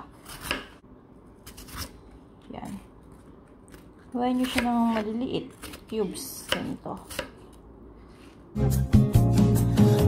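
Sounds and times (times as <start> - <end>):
knife chopping apple on board: 0.0 - 0.8, 3.7 - 7.5
background music: 8.6 - 10.0.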